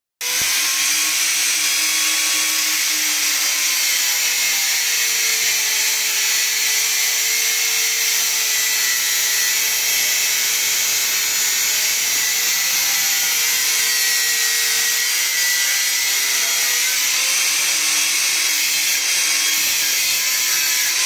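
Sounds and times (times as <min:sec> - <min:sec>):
angle grinder cutting steel pipe: 0:00.2 - 0:21.0.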